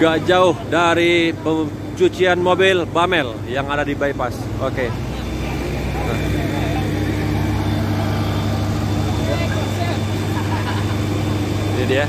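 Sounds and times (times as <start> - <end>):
people talking: 0.0 - 11.0, 11.7 - 12.0
fire truck engine idling: 0.0 - 12.0.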